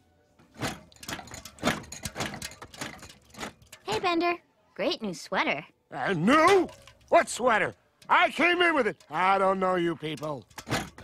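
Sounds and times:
metal cans clattering: 0:00.6 - 0:04.1, 0:06.2 - 0:11.0.

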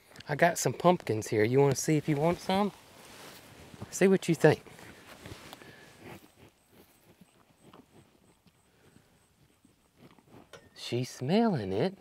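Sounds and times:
slight rustles: 0:00.8 - 0:09.0
cow sniffing: 0:04.6 - 0:10.6.

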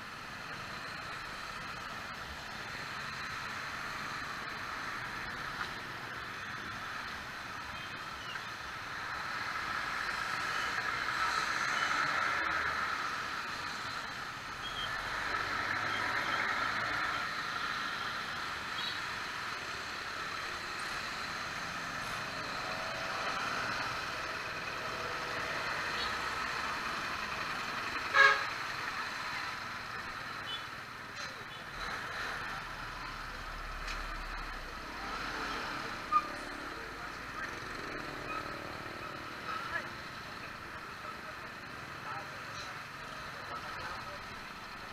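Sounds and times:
motorcycle engine and road noise: 0:00.0 - 0:44.9
vehicle horn toot: 0:28.1 - 0:28.5.

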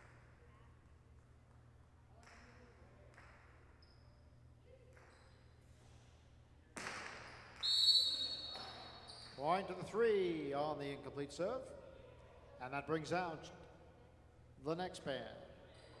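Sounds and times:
ball striking court: 0:06.8 - 0:07.6.

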